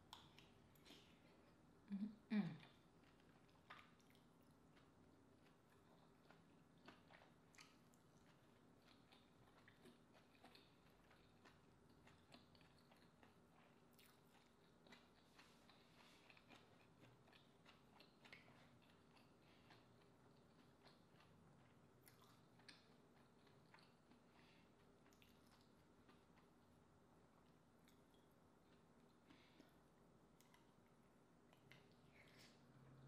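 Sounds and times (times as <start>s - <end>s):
person chewing food: 0.0s - 1.6s, 2.6s - 26.7s, 27.4s - 33.0s.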